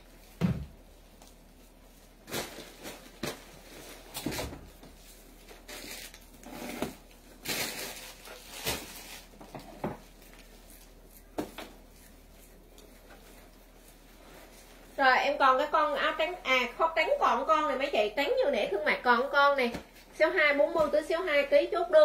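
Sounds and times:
clothes and plastic bags rustling: 0.0s - 22.0s
woman talking: 15.0s - 22.0s.

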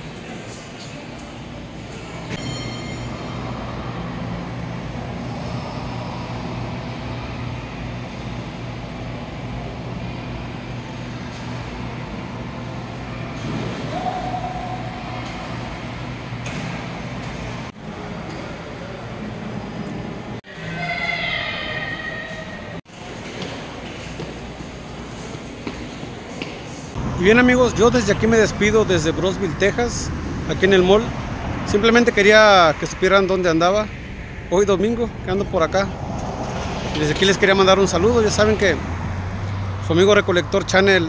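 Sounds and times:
distant voices: 3.1s - 41.0s
footsteps echoing: 23.0s - 26.9s.

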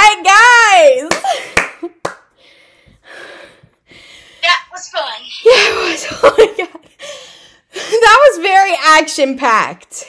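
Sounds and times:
person breathing: 2.3s - 4.4s, 6.9s - 8.0s
person speaking: 4.4s - 6.0s.

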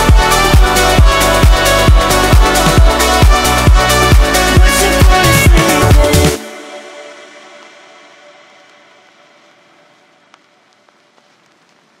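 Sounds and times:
electronic chord reverb tail: 0.0s - 9.9s
faint hiss: 7.2s - 12.0s
soft crackles: 8.6s - 12.0s.

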